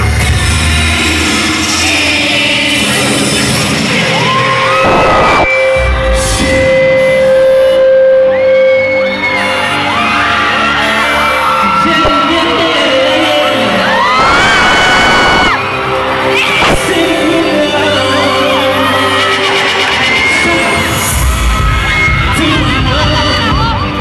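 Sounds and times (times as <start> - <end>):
fans screaming and whooping: 0.0 - 24.0
live pop music: 0.0 - 24.0.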